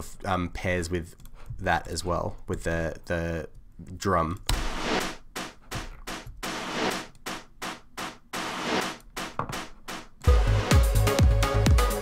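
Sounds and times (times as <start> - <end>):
electronic house music: 4.5 - 12.0.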